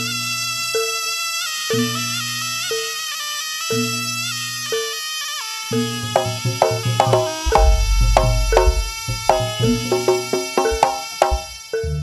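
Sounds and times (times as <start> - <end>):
held melody line: 5.5 - 11.7
pitched percussion strikes: 6.0 - 12.0
deep drum: 7.4 - 11.6.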